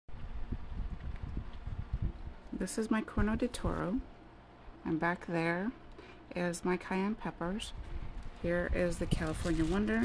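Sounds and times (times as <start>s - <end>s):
handheld microphone handling rumble: 0.1s - 2.6s, 3.2s - 4.0s, 7.7s - 10.0s.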